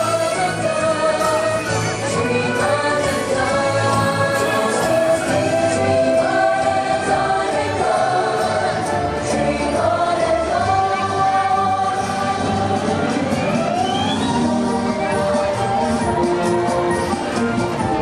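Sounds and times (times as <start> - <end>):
choir singing held notes: 0.0 - 18.0
parade soundtrack music: 0.0 - 18.0
rising pitch sweep: 13.3 - 15.2.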